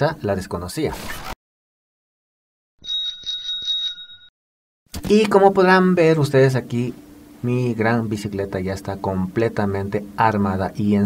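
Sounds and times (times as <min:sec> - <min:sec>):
bicycle bell ringing: 0:02.8 - 0:04.3.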